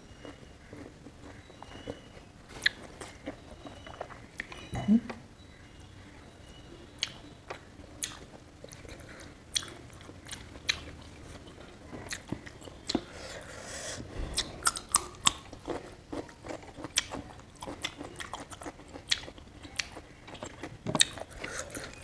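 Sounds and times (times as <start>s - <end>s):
chewing with wet clicks: 0.0s - 4.7s, 7.0s - 13.1s, 14.4s - 22.0s.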